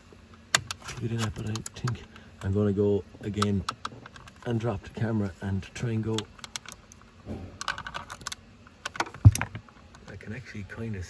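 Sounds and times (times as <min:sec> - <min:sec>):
heavy knock: 0:07.3 - 0:07.6.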